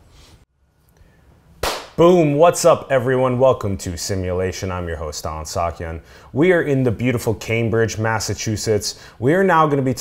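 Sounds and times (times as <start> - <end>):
sharp whip-crack burst: 1.6 - 2.0
man speaking: 2.0 - 10.0.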